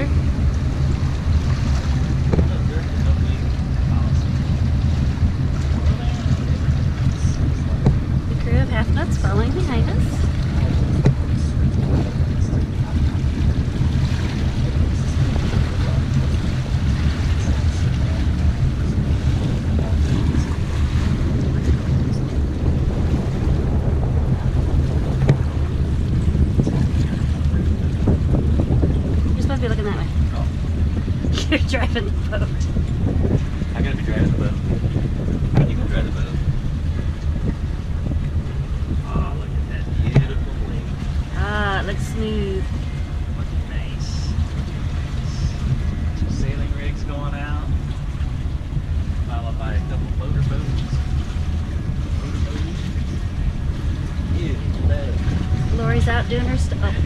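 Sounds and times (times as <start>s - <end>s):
boat engine humming: 0.0s - 57.0s
water washing along hull: 0.0s - 57.0s
wind buffeting microphone: 0.0s - 57.0s.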